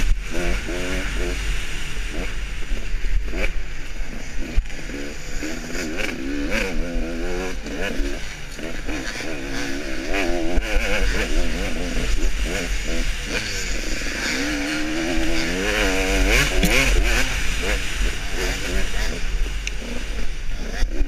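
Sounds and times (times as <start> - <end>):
motorcycle engine revving: 0.0 - 21.0
wind hiss: 0.0 - 21.0.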